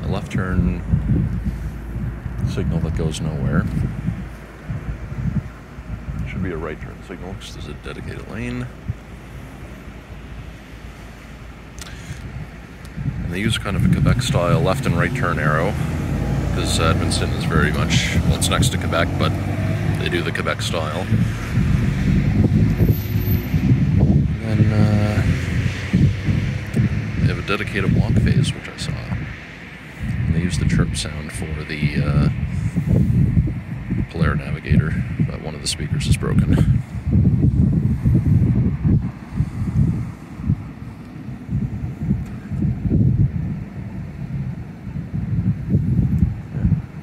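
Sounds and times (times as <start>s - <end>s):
cars driving through intersection: 0.0s - 47.0s
wind on microphone: 0.0s - 47.0s.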